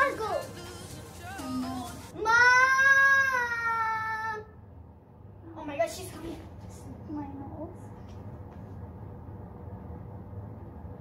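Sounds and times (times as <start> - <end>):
girl's high-pitched wail: 2.1 - 4.5.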